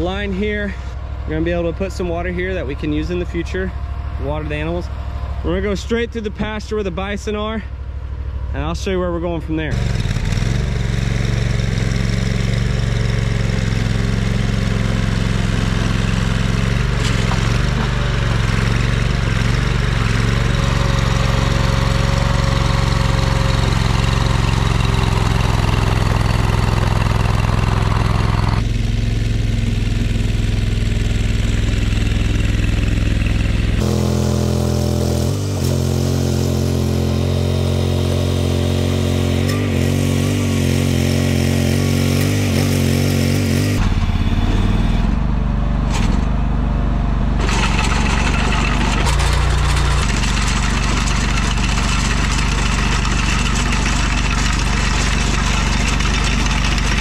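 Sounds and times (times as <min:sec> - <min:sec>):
trencher engine running: 0:00.0 - 0:57.0.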